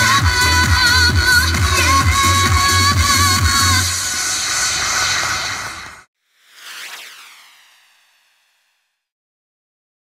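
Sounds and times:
pop music beat: 0.0 - 4.2
loud hiss of noise: 2.2 - 6.1
swishing whoosh effect: 3.8 - 9.1.

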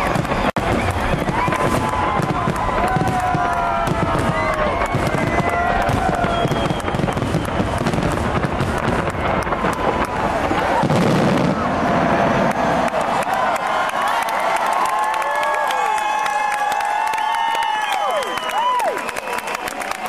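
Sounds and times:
crowd calling out: 0.0 - 20.0
fireworks bursting and crackling: 0.0 - 20.0.

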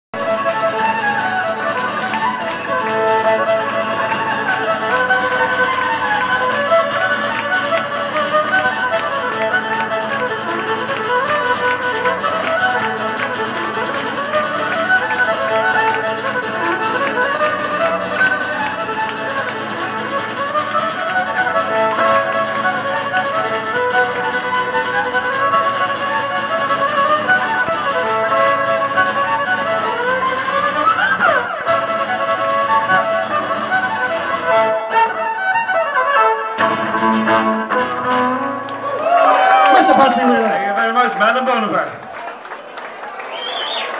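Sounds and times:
fiddle tune: 0.1 - 42.0
strummed acoustic guitar: 0.2 - 35.4, 36.4 - 39.0.

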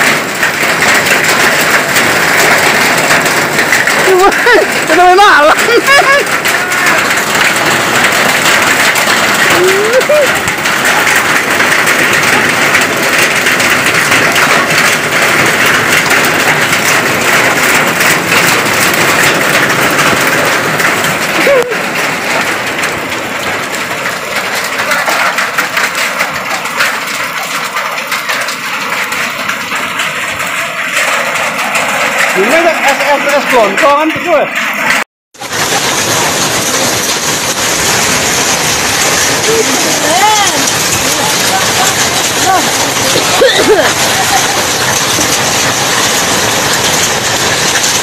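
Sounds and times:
hail and rain on concrete: 0.0 - 48.0.

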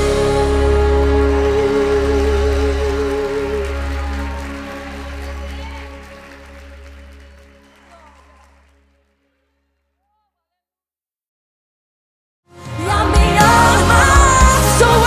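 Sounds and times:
gospel band held chord: 0.0 - 8.4, 12.6 - 15.0.

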